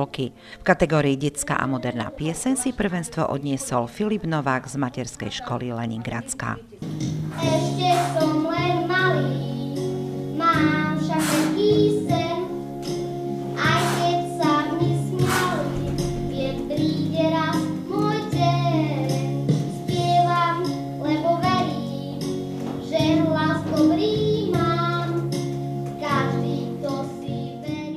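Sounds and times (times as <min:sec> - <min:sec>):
instrumental accompaniment: 0:06.6 - 0:27.9
boy singing into a microphone: 0:07.3 - 0:12.6, 0:13.6 - 0:25.4, 0:26.0 - 0:27.9.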